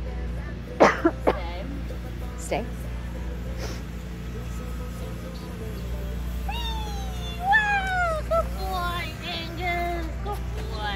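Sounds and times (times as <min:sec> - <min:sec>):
dog whining: 0:06.5 - 0:08.6.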